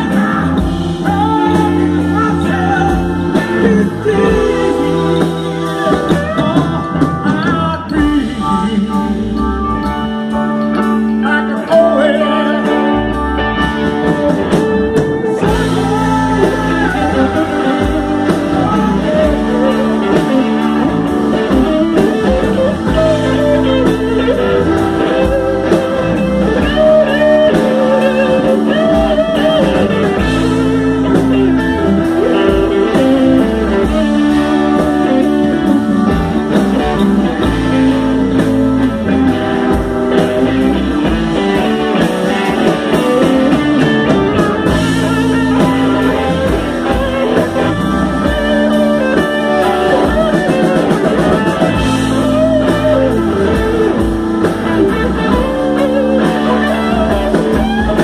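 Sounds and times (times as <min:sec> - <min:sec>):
bending electric guitar notes: 0:00.0 - 0:58.0
soul band playing live: 0:00.0 - 0:58.0.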